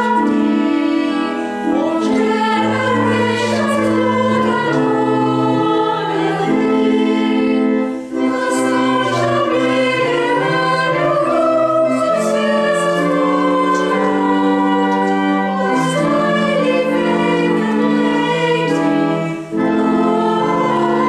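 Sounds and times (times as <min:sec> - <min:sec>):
choir singing a carol: 0:00.0 - 0:21.0
organ chords: 0:00.0 - 0:21.0.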